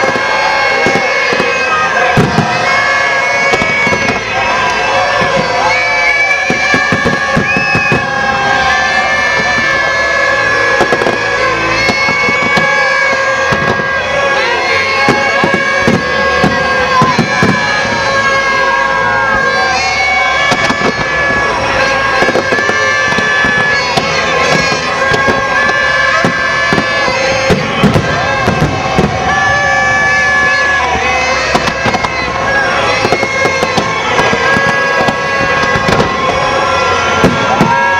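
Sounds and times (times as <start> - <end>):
crowd din: 0.0 - 37.9
fireworks bursting and crackling: 0.0 - 37.9.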